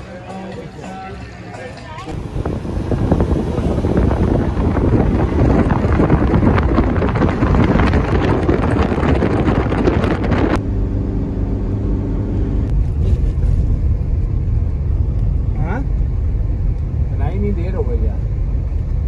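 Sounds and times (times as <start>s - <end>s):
engine and tyres rumbling: 2.0s - 19.0s
wind rushing through window: 2.1s - 10.6s, 12.6s - 19.0s.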